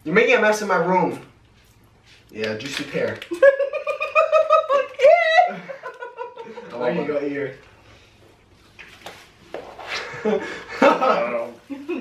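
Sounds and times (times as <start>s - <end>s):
people laughing: 3.3s - 7.0s, 9.9s - 12.0s.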